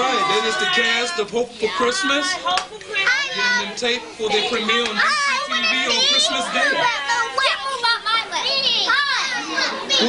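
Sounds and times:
children talking and calling out: 0.0s - 10.0s.

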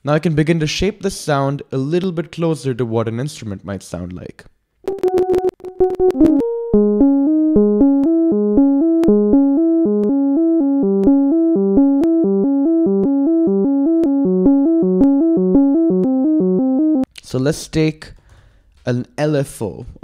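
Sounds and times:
mellow synthesizer notes: 4.9s - 17.1s.

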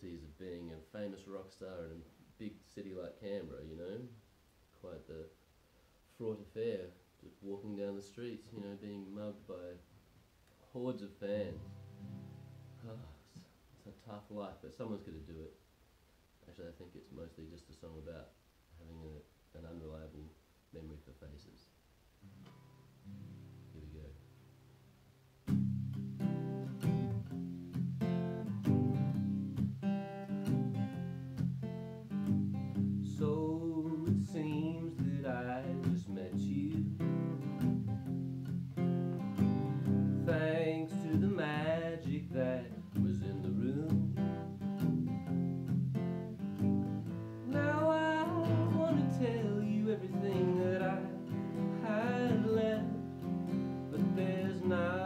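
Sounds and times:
acoustic guitar strumming: 11.3s - 13.0s, 22.2s - 24.5s, 25.4s - 55.0s
man singing: 33.0s - 37.3s, 39.8s - 44.2s, 47.4s - 53.2s, 53.9s - 55.0s.

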